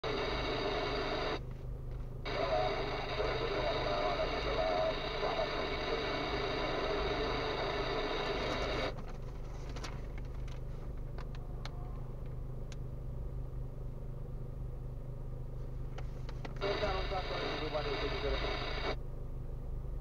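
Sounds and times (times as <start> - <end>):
car radio playing: 2.3 - 9.0, 16.6 - 19.0.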